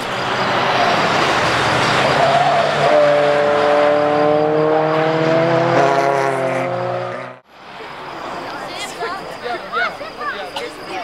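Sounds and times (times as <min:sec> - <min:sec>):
engine drone rising in pitch: 0:00.0 - 0:07.4.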